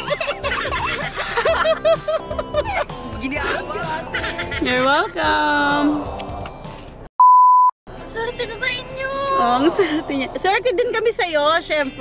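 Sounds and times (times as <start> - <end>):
laughter: 0.0 - 2.9, 4.1 - 4.7
electronic censor beep: 7.2 - 7.7.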